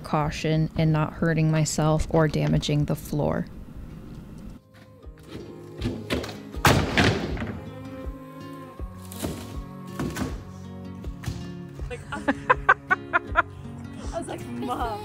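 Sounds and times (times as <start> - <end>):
background music: 3.3 - 15.0
wall panel loud thunk: 5.8 - 7.6.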